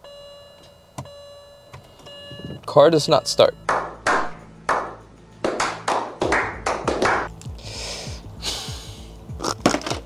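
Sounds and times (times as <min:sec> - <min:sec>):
background music: 0:01.6 - 0:10.0
people clapping: 0:03.7 - 0:07.3.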